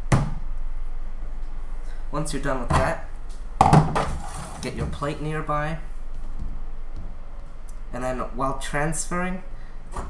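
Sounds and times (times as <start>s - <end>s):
steady low hum: 0.0s - 10.0s
plastic tub knock: 3.6s - 4.2s.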